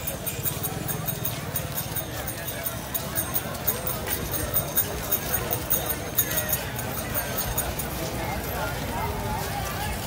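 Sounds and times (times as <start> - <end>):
crowd footsteps on pavement: 0.0 - 10.0
murmur of voices: 0.0 - 10.0.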